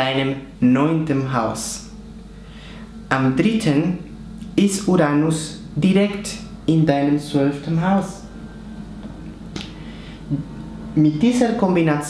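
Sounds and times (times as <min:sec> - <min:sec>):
man's low vocal sound: 0:08.3 - 0:10.9.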